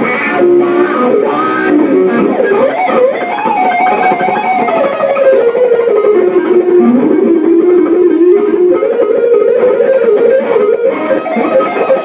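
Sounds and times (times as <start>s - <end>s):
electric guitar melody: 0.0s - 12.0s.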